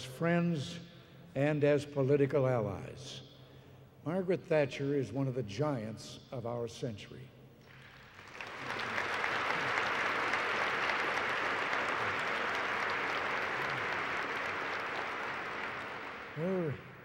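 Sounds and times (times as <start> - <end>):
audience applause: 7.7 - 17.0.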